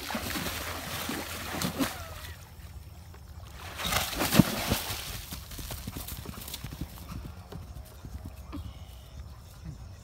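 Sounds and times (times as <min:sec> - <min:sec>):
horse hoofbeats on grass: 0:03.8 - 0:10.0.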